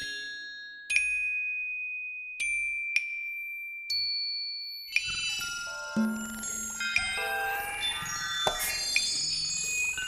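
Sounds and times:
metal bell-like chiming notes: 2.4 - 10.0.

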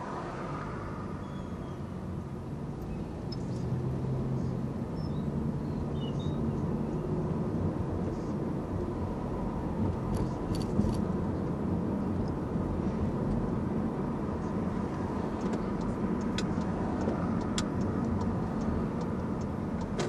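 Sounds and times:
car engine and tyre rumble: 0.0 - 20.0.

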